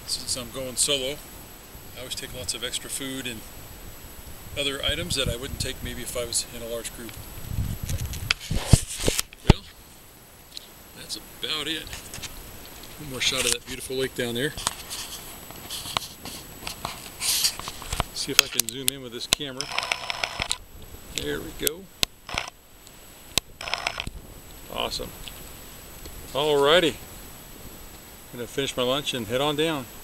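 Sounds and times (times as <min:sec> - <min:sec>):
camera handling rustles and knocks: 0:07.8 - 0:09.6, 0:14.6 - 0:18.8.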